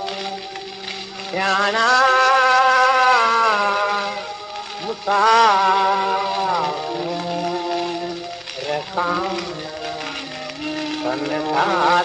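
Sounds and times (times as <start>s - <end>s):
steady accompanying drone: 0.0s - 12.0s
man singing a long note: 1.3s - 12.0s.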